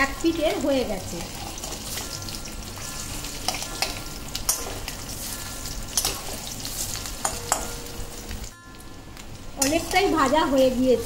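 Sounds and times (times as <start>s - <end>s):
oil popping and crackling: 0.0s - 8.6s
oil sizzling: 0.0s - 11.0s.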